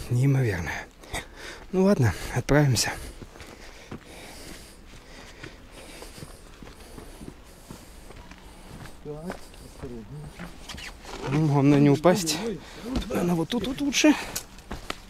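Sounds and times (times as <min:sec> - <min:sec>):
footsteps on gravel and concrete: 0:01.5 - 0:15.0.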